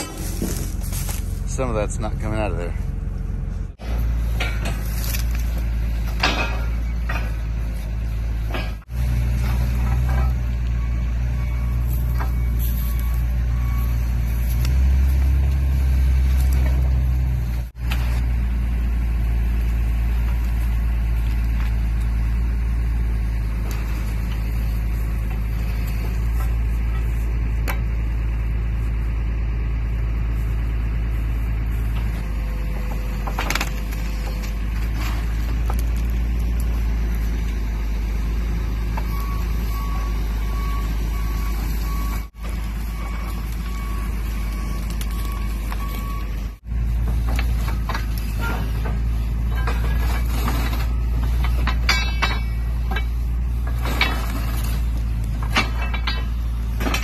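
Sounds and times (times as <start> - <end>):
loader engine running: 0.0 - 57.0.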